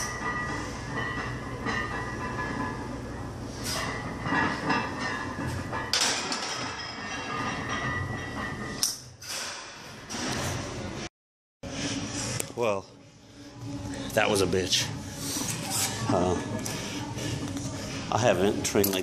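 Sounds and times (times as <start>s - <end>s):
gym background noise: 0.0s - 11.1s, 11.9s - 19.0s.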